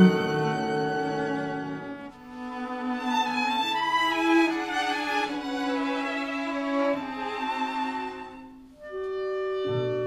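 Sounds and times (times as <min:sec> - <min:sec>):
string phrase: 0:00.0 - 0:08.4
low orchestral notes: 0:00.0 - 0:10.0.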